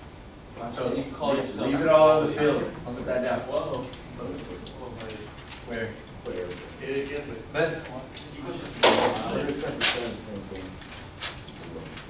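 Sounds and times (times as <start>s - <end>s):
low voices talking: 0.6s - 12.0s.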